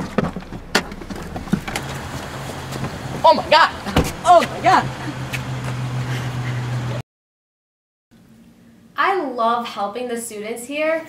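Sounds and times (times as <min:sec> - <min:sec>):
car door opening: 0:00.0 - 0:05.9.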